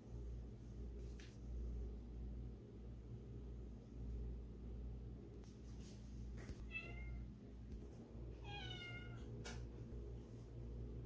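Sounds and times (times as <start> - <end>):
kitten meowing: 8.4 - 9.2.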